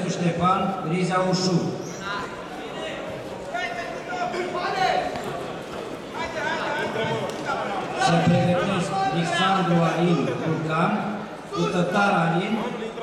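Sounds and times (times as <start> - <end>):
crowd hum: 0.0 - 13.0
people calling out and talking: 0.0 - 13.0.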